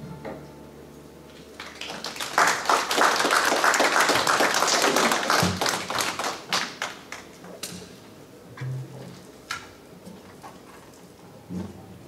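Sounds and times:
small audience clapping: 1.3s - 7.4s.

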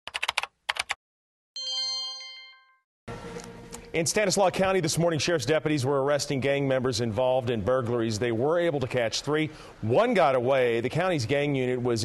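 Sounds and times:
bright multi-tone chime: 1.6s - 2.9s
background noise with low hum: 3.1s - 12.0s.

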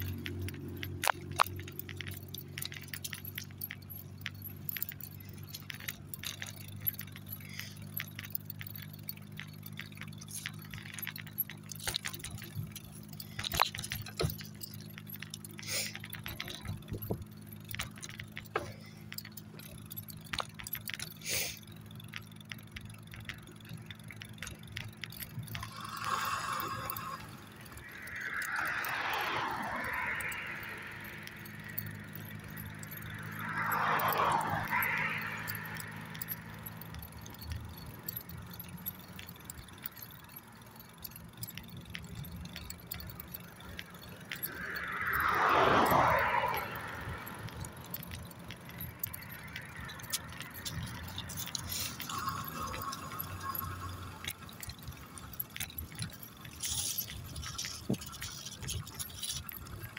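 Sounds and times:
leash and collar jingling: 0.0s - 59.9s
vehicles passing: 0.0s - 59.9s.

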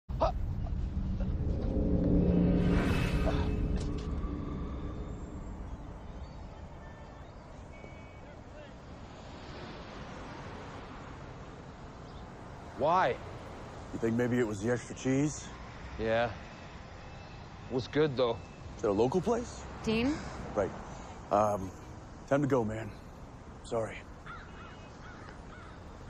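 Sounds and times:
low rumbling dramatic score: 0.1s - 8.0s
whoosh: 0.4s - 7.0s.

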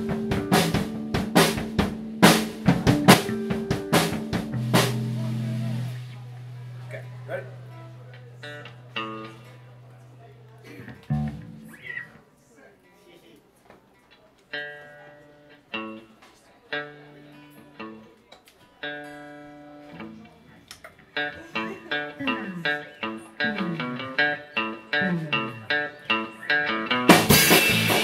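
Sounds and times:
electric guitars and bass: 0.0s - 12.1s, 18.9s - 28.0s.

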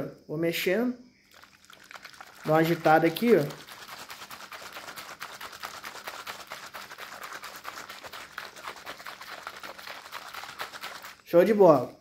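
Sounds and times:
liquid sloshing in shaken bottle: 1.2s - 12.0s.

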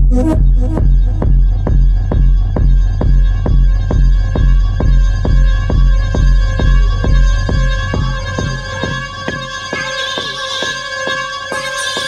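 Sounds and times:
sustained synth tone: 0.0s - 8.6s
deep bass: 0.0s - 9.9s
techno kick drum: 0.0s - 12.0s.

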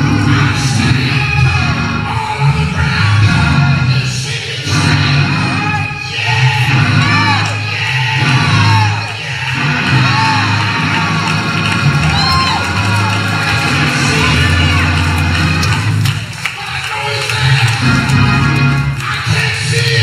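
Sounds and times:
gospel band music: 0.0s - 20.0s
people shouting and whooping: 5.7s - 20.0s.

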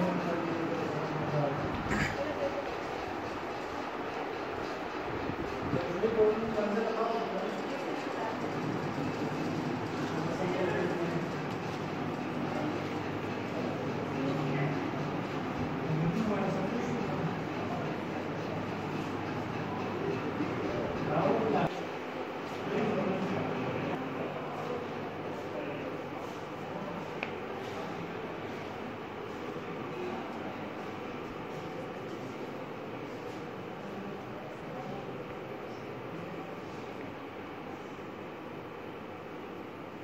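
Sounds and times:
distant voices: 0.0s - 39.1s
rumbling indoor hall noise: 0.0s - 40.0s.

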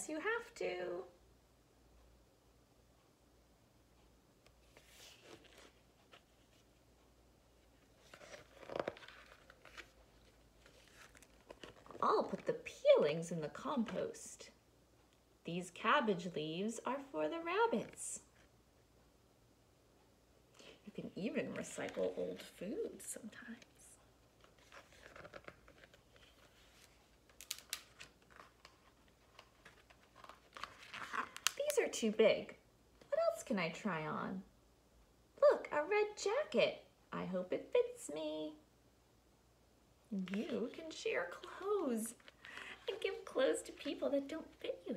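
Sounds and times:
book page turning rustle: 4.6s - 6.8s, 7.6s - 12.6s, 21.4s - 31.8s, 40.2s - 44.9s.

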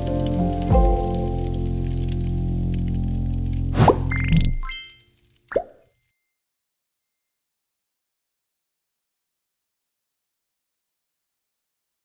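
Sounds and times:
cartoonish falling plop: 3.7s - 5.9s.

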